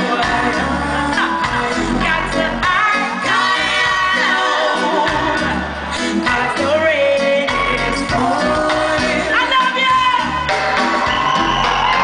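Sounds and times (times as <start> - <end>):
woman singing: 0.0 - 10.3
live reggae band: 0.0 - 12.0.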